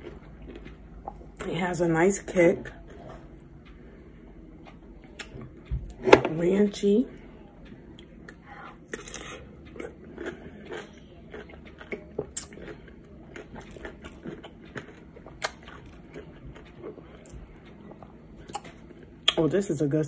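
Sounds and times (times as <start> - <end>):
crunching pickles: 0.0 - 1.4, 8.0 - 19.7
wet chewing: 0.0 - 1.4, 7.9 - 19.4.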